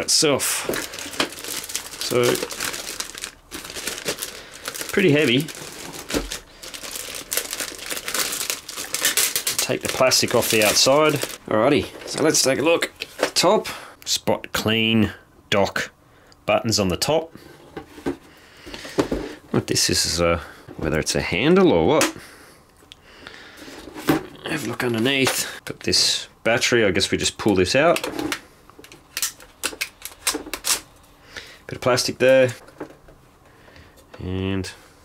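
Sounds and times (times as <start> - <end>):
plastic handling noise: 0.0 - 13.5, 32.4 - 34.2
plastic bag crinkling: 0.5 - 11.4.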